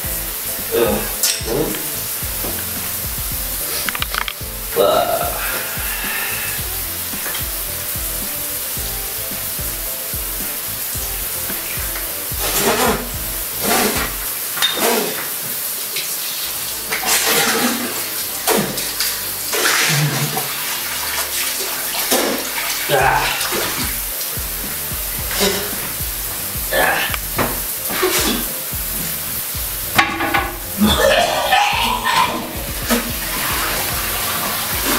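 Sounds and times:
faint background music: 0:00.0 - 0:34.9
water running from sink tap: 0:00.0 - 0:34.9
water splashing: 0:00.0 - 0:34.9.

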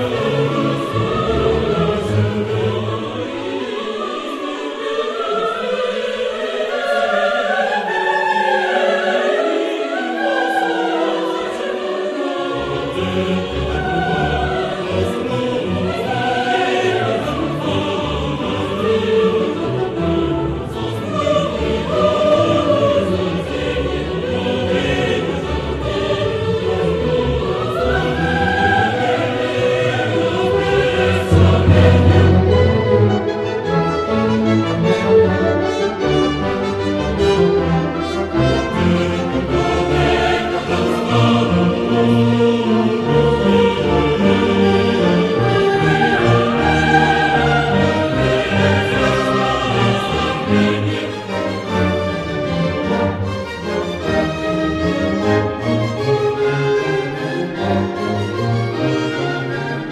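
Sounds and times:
choir singing: 0:00.0 - 0:59.9
orchestral accompaniment: 0:00.0 - 0:59.9
low bass voices singing: 0:11.0 - 0:35.5, 0:37.3 - 0:53.1.

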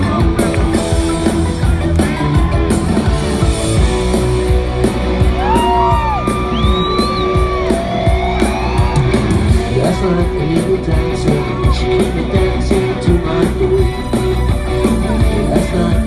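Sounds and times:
electric guitar: 0:00.0 - 0:16.0
heavy bass: 0:00.0 - 0:16.0
live rock band playing: 0:00.0 - 0:16.0
steady drum beat: 0:00.0 - 0:16.0.

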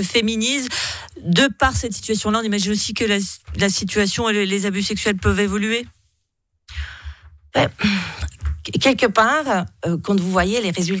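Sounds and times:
person speaking: 0:00.0 - 0:05.9, 0:06.7 - 0:11.0
breath into microphone: 0:00.7 - 0:01.2, 0:06.7 - 0:08.3.

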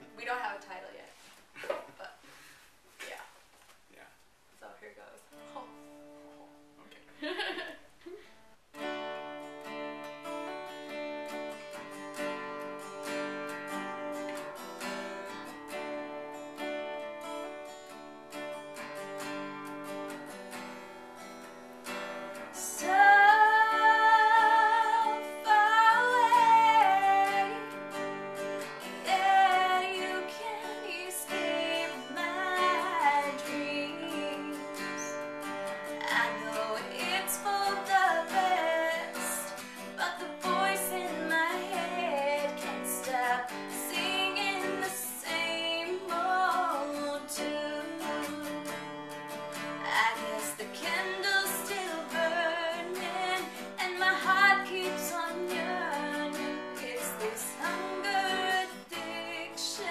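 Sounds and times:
acoustic guitar playing: 0:05.3 - 0:59.9
woman singing: 0:22.4 - 0:59.9.

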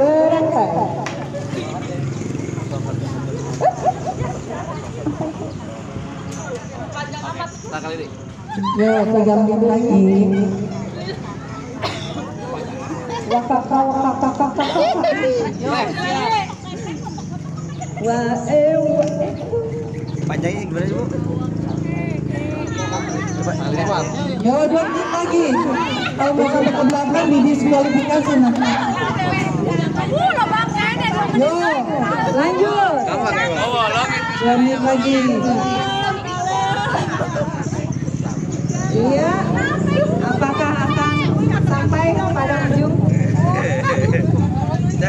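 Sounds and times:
onlookers chattering: 0:00.0 - 0:45.0
people talking: 0:20.4 - 0:45.0.

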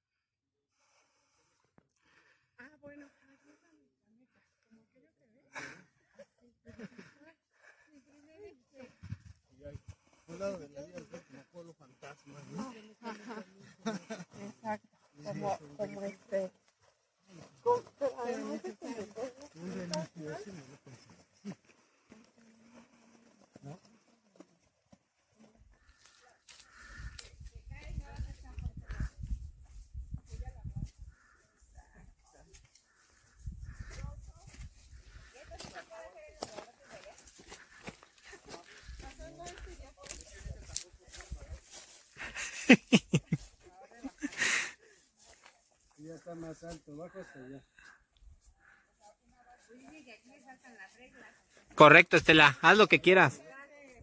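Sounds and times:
people talking outdoors: 0:00.7 - 0:54.0.

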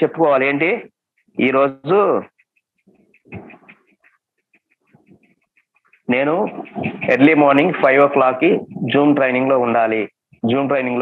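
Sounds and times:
quick high chirps: 0:02.2 - 0:08.8.

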